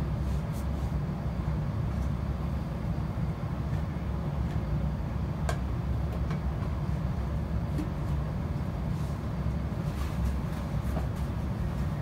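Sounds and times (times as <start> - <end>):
train engine rumble: 0.0 - 12.0.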